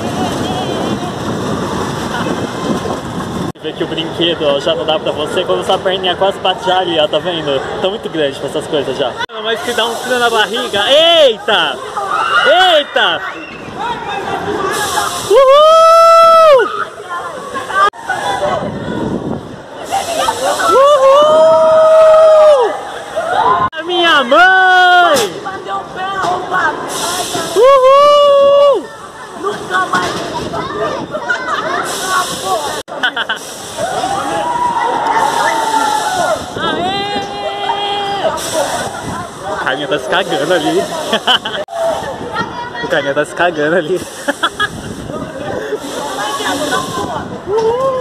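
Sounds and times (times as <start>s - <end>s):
shouts and chatter: 3.9s - 48.0s
riders screaming whoops: 15.3s - 16.9s, 20.6s - 23.7s, 33.8s - 38.3s, 47.5s - 48.0s
bursts of laughter: 32.9s - 33.6s, 44.1s - 45.0s.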